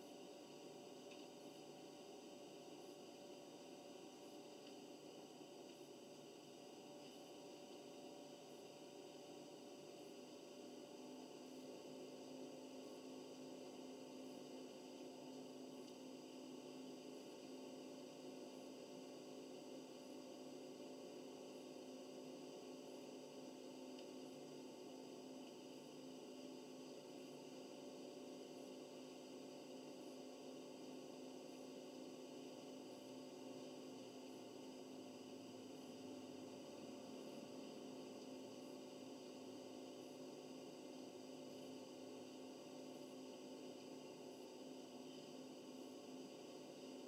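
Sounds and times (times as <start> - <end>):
steady hum: 0.0 - 47.0.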